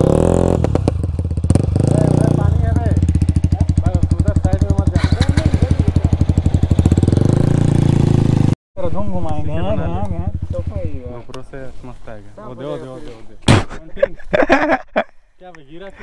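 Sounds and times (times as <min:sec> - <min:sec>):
motorcycle engines idling: 0:00.0 - 0:13.3.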